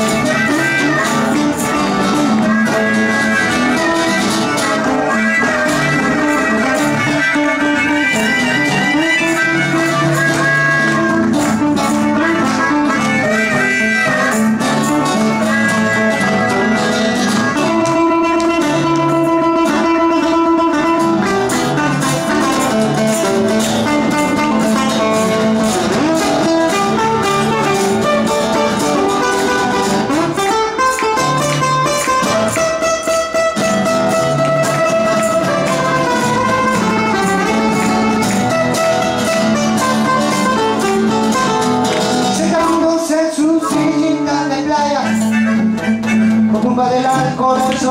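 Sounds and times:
harmonica: 0:00.0 - 0:42.7, 0:43.5 - 0:47.4
blues band playing: 0:00.0 - 0:47.9.

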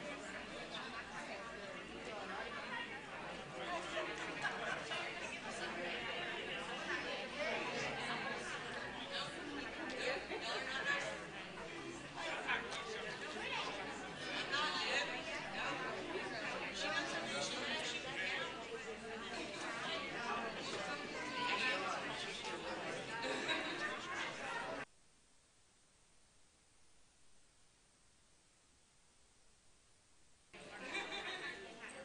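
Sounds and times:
crowd chatter: 0:00.0 - 0:24.9, 0:30.5 - 0:32.0.

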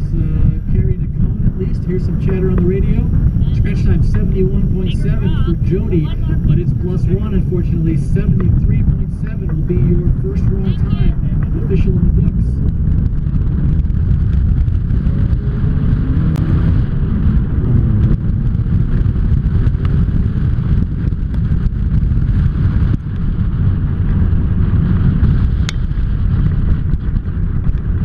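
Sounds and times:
low wind rumble: 0:00.0 - 0:28.0
sports car engine accelerating: 0:00.0 - 0:28.0.

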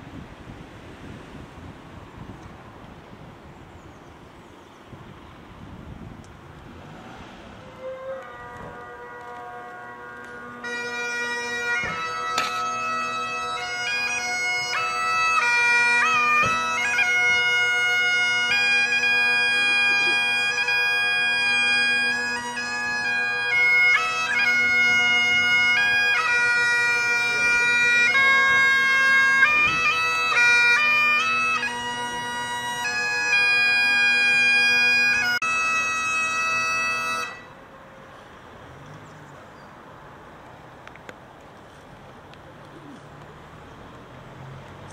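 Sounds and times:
bagpipe drones: 0:07.6 - 0:38.2
bagpipes playing a melody: 0:07.8 - 0:37.7.

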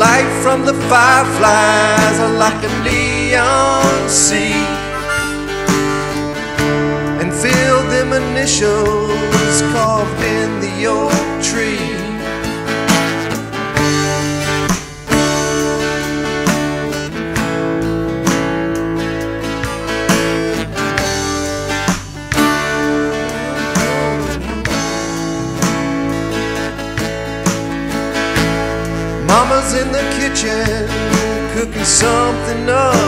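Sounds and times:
instrumental country music: 0:00.0 - 0:33.0.

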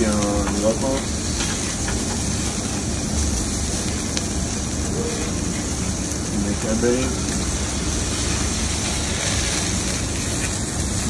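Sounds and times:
high sizzling hiss: 0:00.0 - 0:11.0
roar of fire: 0:00.0 - 0:11.0.

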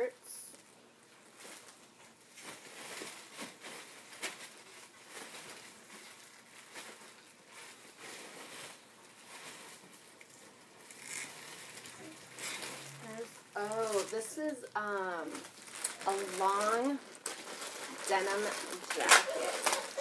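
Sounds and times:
rustling plastic bags: 0:01.0 - 0:20.0.

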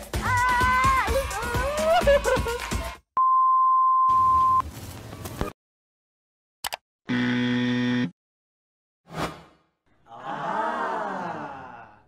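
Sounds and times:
loud flat buzzer: 0:07.1 - 0:08.1.

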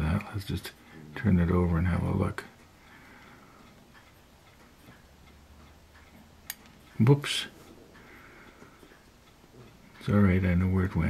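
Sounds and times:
clock ticking faintly: 0:00.0 - 0:11.0
tweezers slipping click: 0:06.0 - 0:06.8.

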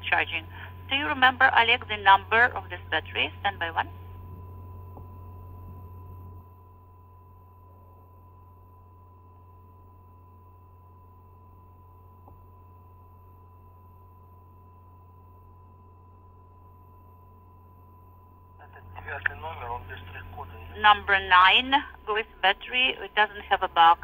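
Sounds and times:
radio low hum: 0:00.0 - 0:05.0, 0:18.6 - 0:24.0
thin steady tone: 0:00.1 - 0:24.0.

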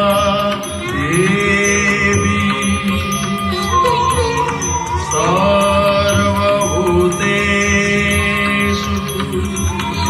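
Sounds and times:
chanted hymn in held notes: 0:00.0 - 0:10.0
percussion keeping even beat: 0:00.0 - 0:10.0
steady drone: 0:00.0 - 0:10.0.

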